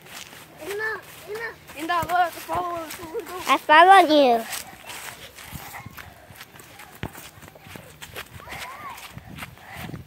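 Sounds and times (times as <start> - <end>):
running footsteps on grass: 0.0 - 10.0
child's vocal sound: 3.0 - 6.1.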